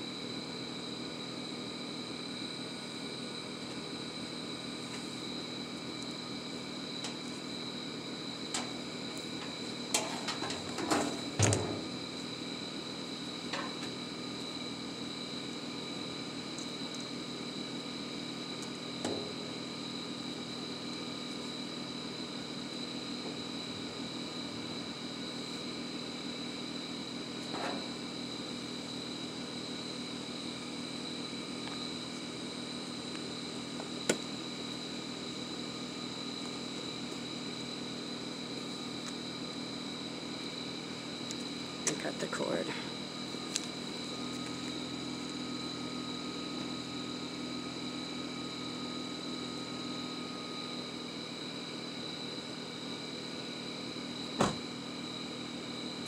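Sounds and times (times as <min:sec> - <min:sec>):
mechanical hum with high whine: 0:00.0 - 0:56.0.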